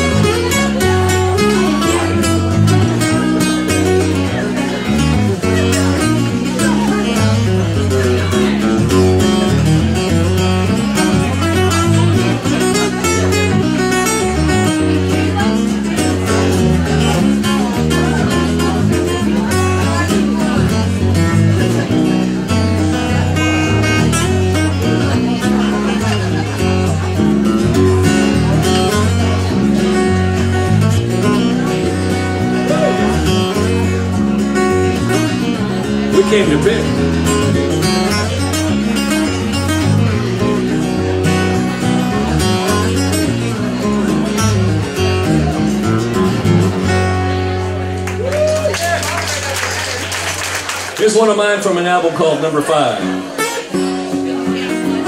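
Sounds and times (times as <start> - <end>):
acoustic guitar picking: 0.0 - 55.0.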